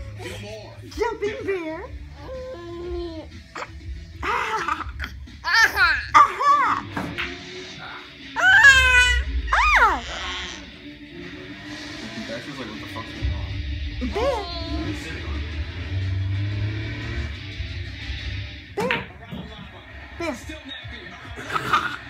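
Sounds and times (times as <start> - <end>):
tv talk: 0.0 - 17.4, 18.6 - 22.0
tv music: 0.0 - 22.0
toddler squealing with laughter: 2.2 - 6.8, 8.4 - 10.6.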